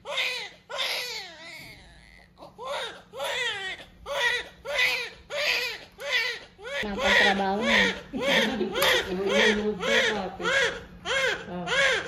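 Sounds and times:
newborn baby crying: 0.0 - 12.0.

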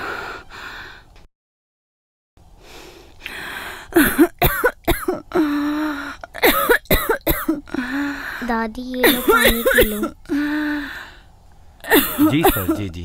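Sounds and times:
woman coughing: 4.0 - 5.3, 6.4 - 7.9, 9.0 - 10.2, 11.8 - 12.9
woman groaning: 9.0 - 10.8.

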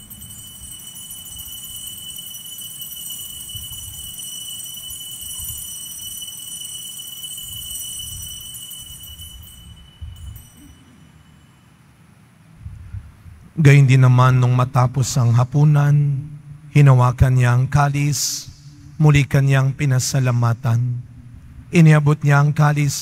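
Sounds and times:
altar bells ringing: 0.0 - 12.2.

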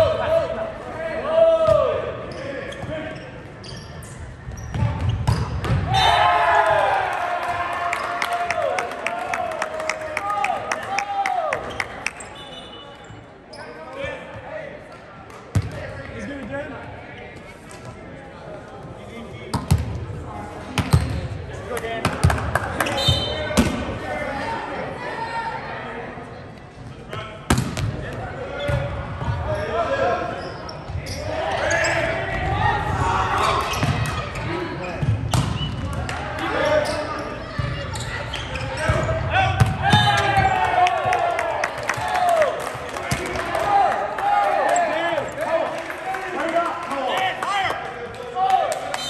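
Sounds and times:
players shouting and cheering: 0.0 - 3.2, 5.7 - 12.7, 27.0 - 49.0.

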